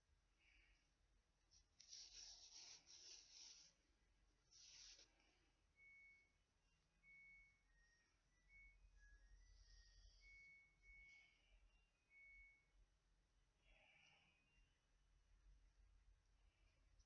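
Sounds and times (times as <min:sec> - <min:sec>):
soft yarn rustles: 0:01.4 - 0:05.4
faint high whistle-like tones: 0:04.5 - 0:15.6.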